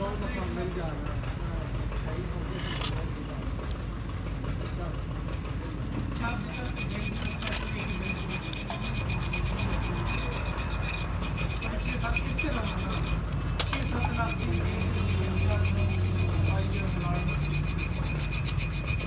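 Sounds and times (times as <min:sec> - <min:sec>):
machinery humming: 0:05.0 - 0:19.0
fast rasping rhythm: 0:06.2 - 0:19.0.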